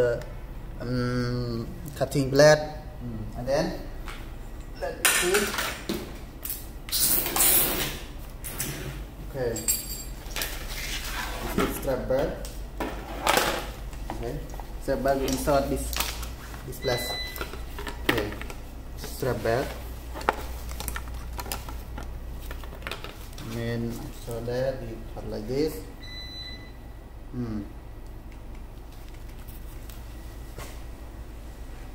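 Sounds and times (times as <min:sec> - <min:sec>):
man talking: 0:00.0 - 0:03.9, 0:14.1 - 0:16.0, 0:16.6 - 0:17.2, 0:18.1 - 0:19.8, 0:23.4 - 0:26.0, 0:27.3 - 0:27.8
steady low hum: 0:00.0 - 0:31.9.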